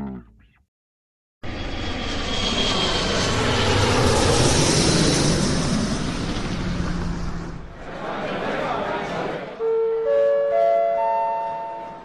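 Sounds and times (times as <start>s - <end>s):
public-address chime: 9.6s - 12.0s.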